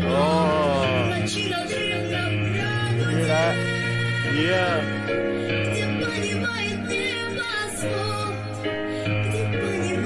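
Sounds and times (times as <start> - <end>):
piano: 0.0 - 10.0
woman singing: 0.0 - 10.0.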